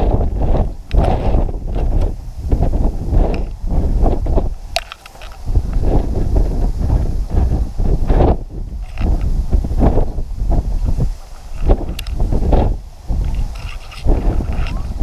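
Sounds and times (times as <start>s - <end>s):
tall grass rustling: 0.0s - 15.0s
wind buffeting microphone: 0.0s - 15.0s.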